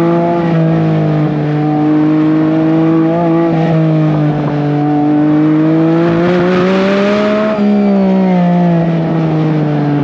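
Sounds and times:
car engine running steadily: 0.0s - 10.0s.

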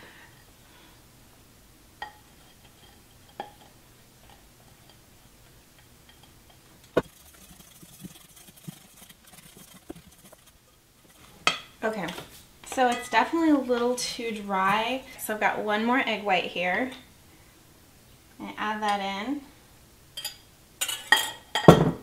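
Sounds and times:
utensil scraping a metal bowl: 6.0s - 11.6s.

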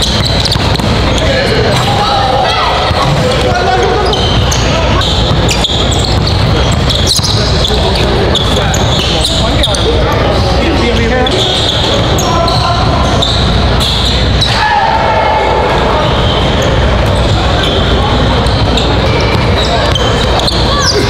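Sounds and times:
ball bouncing on hardwood court: 0.0s - 1.9s, 5.1s - 7.8s, 19.2s - 20.8s
voices echoing in a hall: 0.0s - 21.0s.

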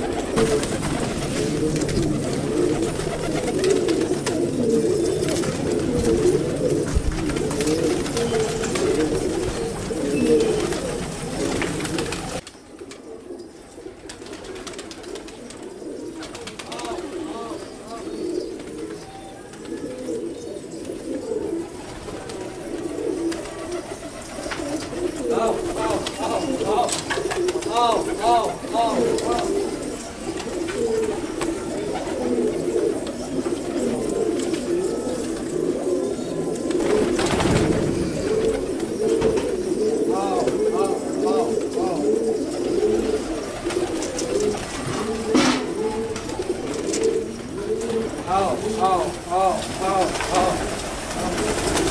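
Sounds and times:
pigeons cooing: 0.0s - 51.9s
quick repeated pigeon calls: 0.0s - 51.9s.

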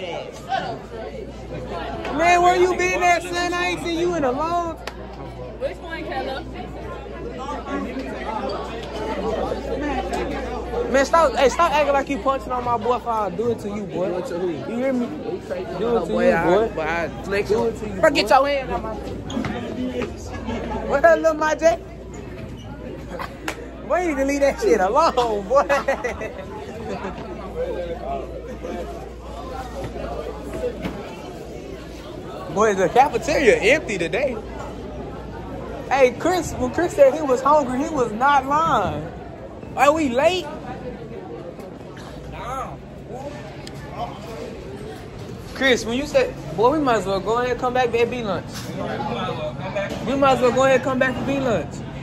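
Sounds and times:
young people chattering: 0.0s - 52.0s.

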